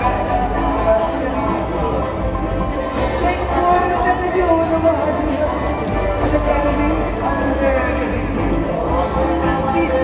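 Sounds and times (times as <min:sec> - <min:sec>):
music: 0:00.0 - 0:10.0.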